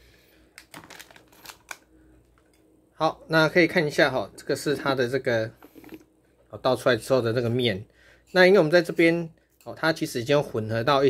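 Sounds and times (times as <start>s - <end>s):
snack packet crinkling: 0.5s - 2.5s.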